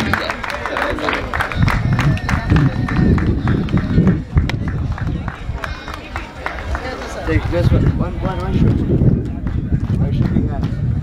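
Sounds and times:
indistinct talking: 0.0s - 11.0s
steady low rumbling: 1.2s - 5.7s.

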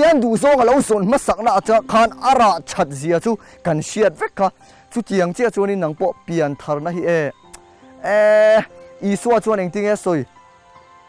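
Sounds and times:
man speaking: 0.0s - 7.3s, 8.0s - 10.3s
soft background music: 0.0s - 11.0s.

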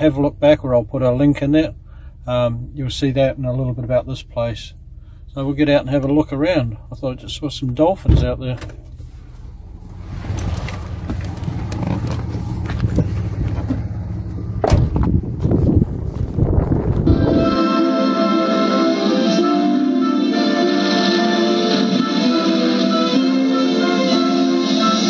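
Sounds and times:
wind rumbling on microphone: 9.6s - 17.6s
background music: 17.1s - 25.0s.

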